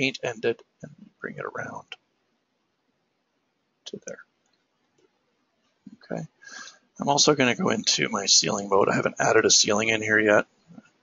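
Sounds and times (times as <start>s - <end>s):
man saying a word: 0.0s - 0.6s, 1.2s - 2.0s, 7.0s - 10.4s.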